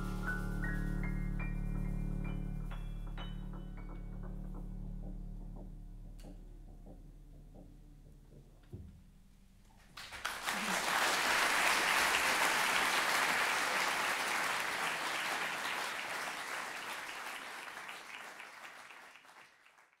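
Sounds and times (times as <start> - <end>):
audience applauding: 10.0 - 20.0.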